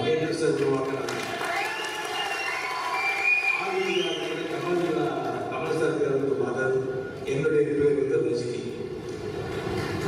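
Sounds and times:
crowd cheering: 1.1s - 5.1s
high whistles: 1.6s - 4.4s.

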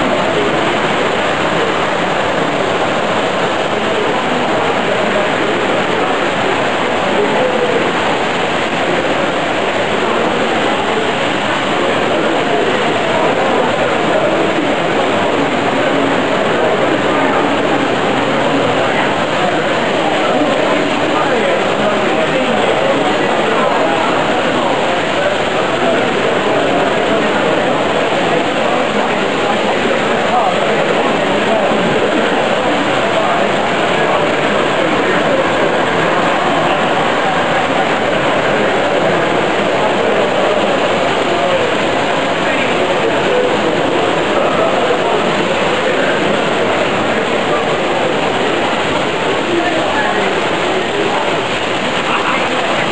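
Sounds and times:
model train running on track: 0.0s - 52.9s.

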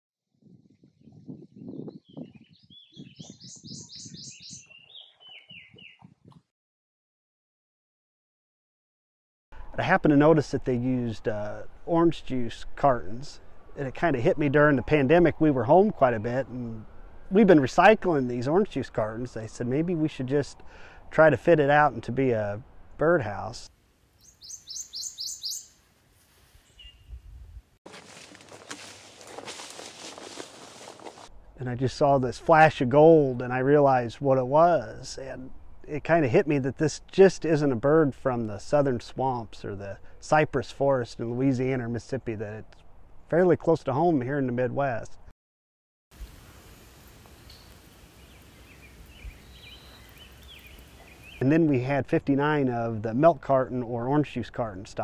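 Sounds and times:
warbler singing ringing notes: 1.6s - 6.1s, 24.2s - 25.8s, 47.5s - 51.4s.

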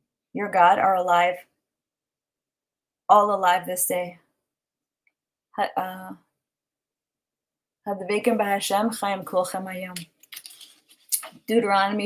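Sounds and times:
woman speaking: 0.4s - 1.5s, 3.1s - 4.2s, 5.6s - 6.3s, 7.9s - 10.1s, 11.2s - 12.0s.

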